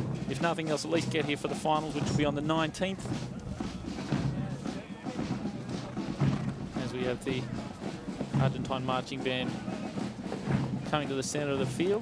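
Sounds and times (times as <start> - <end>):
brass marching band playing: 0.0 - 12.0
drum strokes: 0.0 - 12.0.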